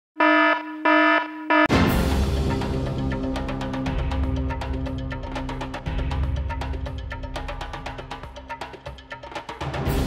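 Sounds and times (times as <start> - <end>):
electronic alarm beeps: 0.2 - 1.7
music: 1.7 - 10.0.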